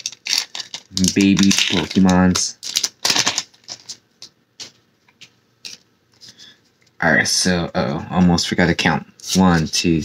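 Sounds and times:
foil wrapper tearing and crinkling: 0:00.0 - 0:04.0.

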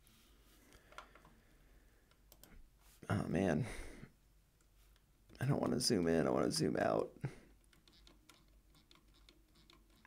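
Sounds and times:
computer mouse clicking: 0:02.0 - 0:02.6, 0:07.6 - 0:10.0.

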